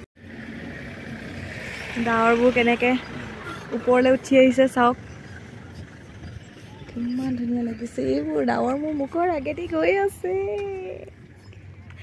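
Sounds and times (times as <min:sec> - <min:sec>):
wind buffeting microphone: 0:00.7 - 0:12.0.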